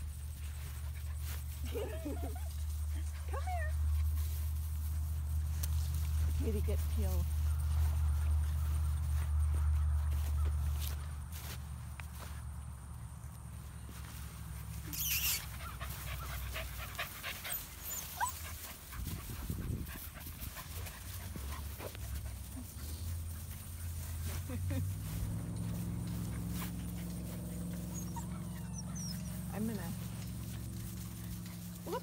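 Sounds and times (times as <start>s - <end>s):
puppies scuffling: 0.0s - 12.8s, 13.4s - 32.0s
rustle of dry grass: 0.0s - 32.0s
puppies whining and yipping: 14.8s - 19.6s, 26.1s - 32.0s.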